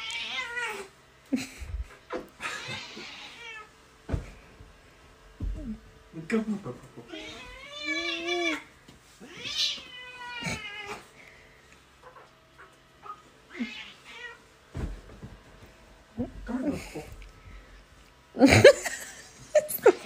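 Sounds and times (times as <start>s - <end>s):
person laughing: 1.3s - 3.0s, 18.4s - 20.0s
cat meowing: 7.1s - 8.6s, 9.2s - 11.0s.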